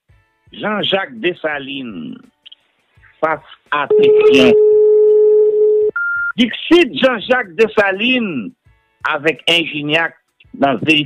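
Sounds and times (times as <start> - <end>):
man speaking: 0.6 - 2.3, 3.2 - 4.6, 6.4 - 8.5, 9.1 - 11.0
loud steady electronic tone: 3.9 - 4.7
short high beep: 3.9 - 4.8.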